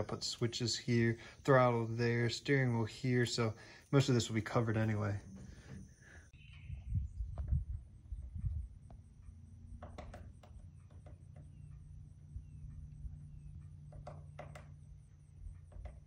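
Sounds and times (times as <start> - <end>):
wind rumble on microphone: 5.3 - 10.6.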